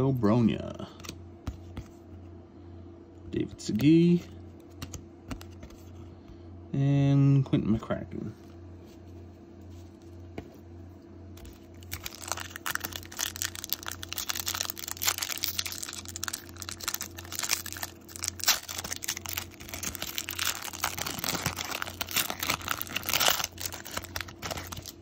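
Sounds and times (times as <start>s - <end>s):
foil wrapper crinkling: 11.4s - 25.0s.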